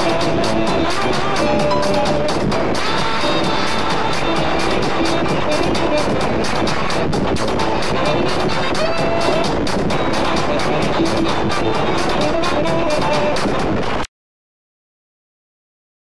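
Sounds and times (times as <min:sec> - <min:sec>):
loud dense music: 0:00.0 - 0:14.0.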